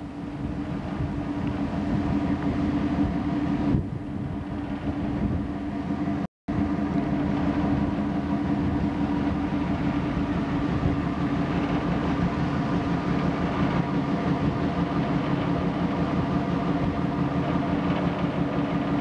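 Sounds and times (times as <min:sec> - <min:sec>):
ship engine droning: 0:00.0 - 0:19.0
steady rushing noise: 0:00.0 - 0:19.0.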